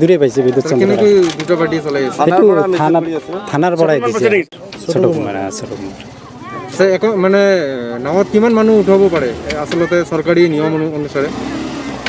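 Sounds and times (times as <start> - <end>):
man talking: 0.0 - 6.0.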